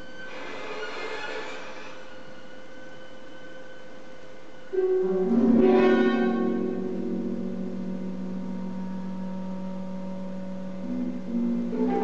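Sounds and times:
chamber music: 2.4s - 12.0s
clarinet low note: 4.7s - 12.0s.

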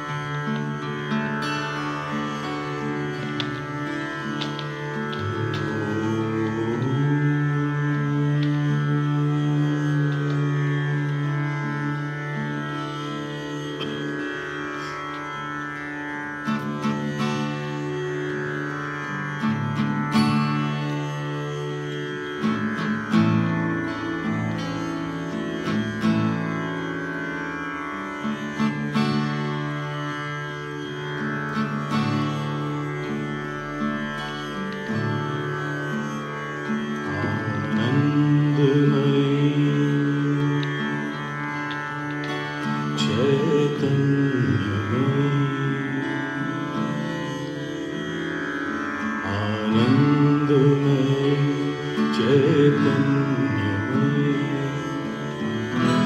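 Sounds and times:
sustained low tones: 0.0s - 15.3s
acoustic guitar playing chords: 0.0s - 56.0s.

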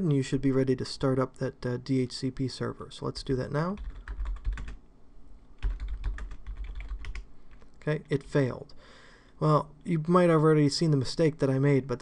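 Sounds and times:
computer keyboard typing: 3.7s - 4.8s, 5.6s - 7.3s.

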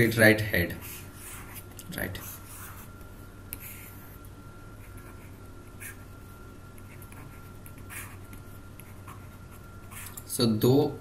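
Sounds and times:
low electrical hum: 0.0s - 11.0s
stylus scratching on surface: 0.8s - 2.9s, 6.8s - 10.2s.

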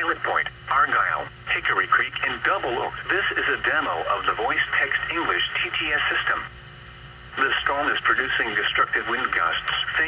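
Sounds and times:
synthetic voice over radio speaker: 7.4s - 10.0s.

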